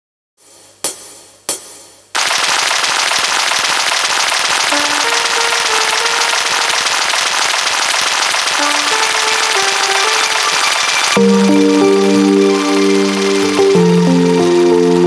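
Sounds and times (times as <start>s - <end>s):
dense crackling noise: 2.2s - 15.0s.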